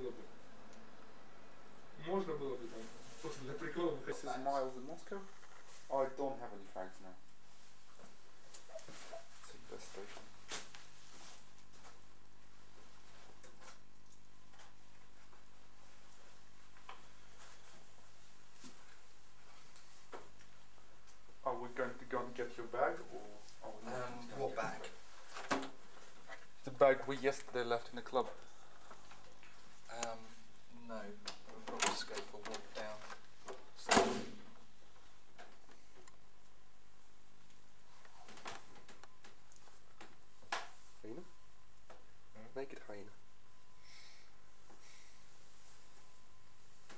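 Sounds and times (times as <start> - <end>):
low hum and hiss: 0.0 - 46.9
loud sharp thump: 33.9 - 34.5.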